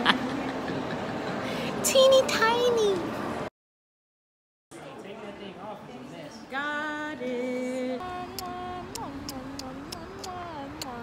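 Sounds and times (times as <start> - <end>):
street noise: 0.0 - 3.5, 4.7 - 11.0
woman singing unaccompanied: 6.5 - 11.0
sharp ticks: 8.3 - 11.0.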